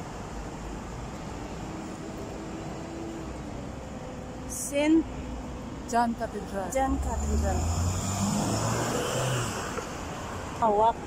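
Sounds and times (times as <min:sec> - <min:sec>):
vehicle engine passing: 0:06.9 - 0:10.2.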